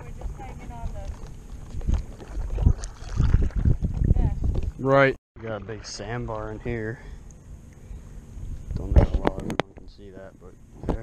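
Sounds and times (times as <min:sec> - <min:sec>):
wind buffeting microphone: 0:00.0 - 0:05.0
paddle swishing through water: 0:00.1 - 0:04.8.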